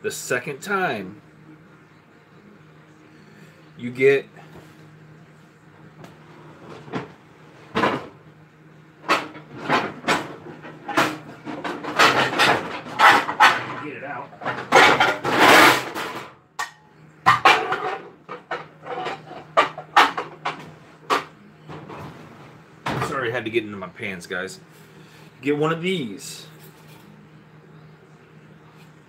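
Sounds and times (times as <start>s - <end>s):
metal baking pans clanking: 9.1s - 16.7s, 17.3s - 21.3s.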